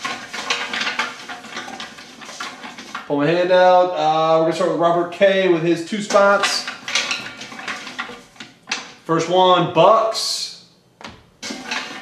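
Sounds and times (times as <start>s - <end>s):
hand stirring papers in metal pot: 0.0s - 9.9s, 11.4s - 12.0s.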